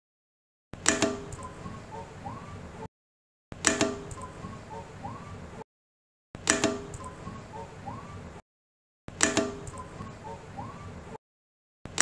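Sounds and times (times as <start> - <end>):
sharp clicks: 0.8 - 1.6, 3.6 - 4.4, 9.1 - 10.0.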